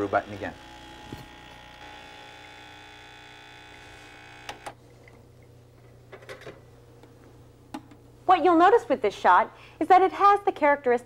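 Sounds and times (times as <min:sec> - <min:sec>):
espresso machine pump buzzing: 0:00.0 - 0:04.8.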